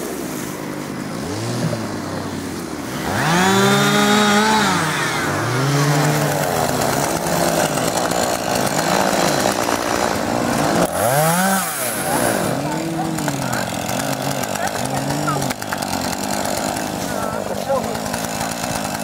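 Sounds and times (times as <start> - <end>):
chainsaw revving: 0.9 - 19.0.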